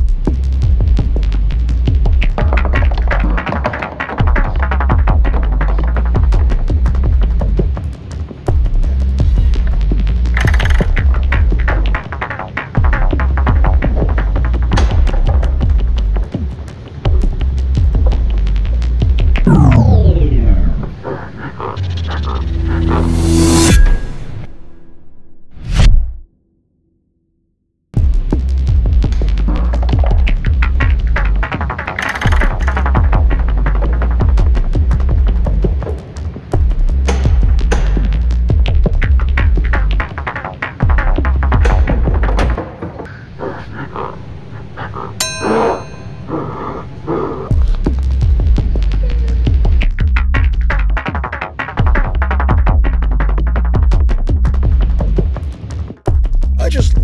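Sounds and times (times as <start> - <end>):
music with heavy beat: 0.0 - 16.3, 47.5 - 57.0
low music drone: 19.4 - 25.1
metallic bell-like clang: 23.7 - 25.2, 45.2 - 46.5.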